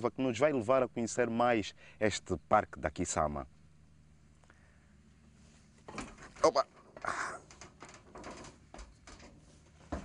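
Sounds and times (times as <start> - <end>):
footsteps on metal ladder: 5.8 - 10.0.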